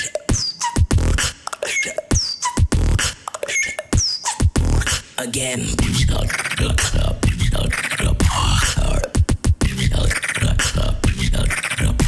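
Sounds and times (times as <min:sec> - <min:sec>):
beatboxing bass kicks and clicks: 0:00.0 - 0:12.0.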